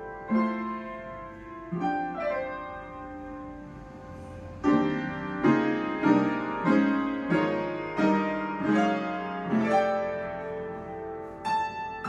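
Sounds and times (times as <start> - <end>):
upright piano chords: 0.0 - 12.0.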